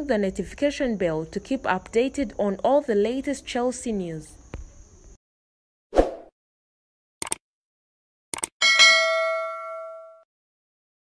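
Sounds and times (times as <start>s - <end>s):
notification bell ding: 8.6s - 10.3s.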